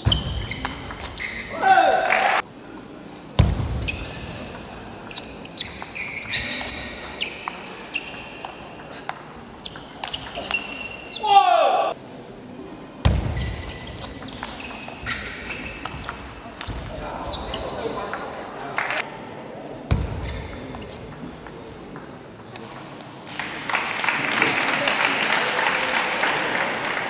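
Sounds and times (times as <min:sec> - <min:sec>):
shoes squeaking on floor: 0:00.0 - 0:01.6, 0:03.8 - 0:08.7, 0:09.5 - 0:11.3, 0:13.3 - 0:18.1, 0:20.2 - 0:23.2
crowd applause: 0:23.4 - 0:27.0.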